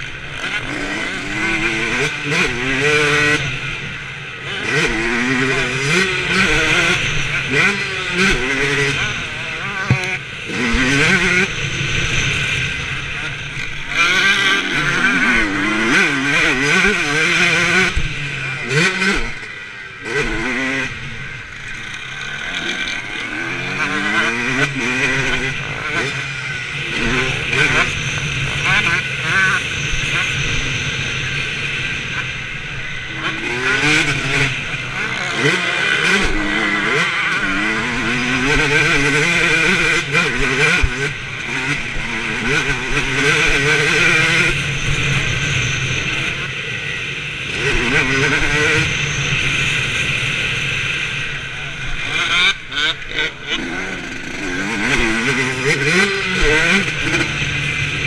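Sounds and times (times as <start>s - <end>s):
motocross bike engine revving: 0.0s - 58.0s.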